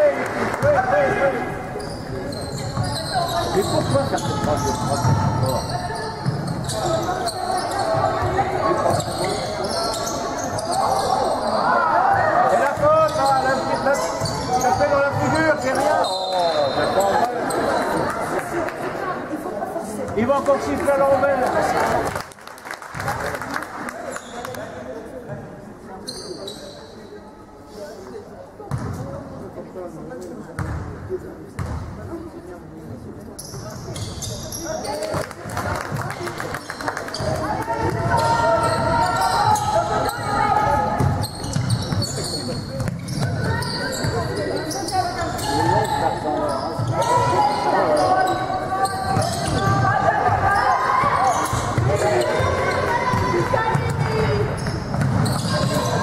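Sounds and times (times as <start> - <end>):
voices in echoing hall: 0.0 - 56.0.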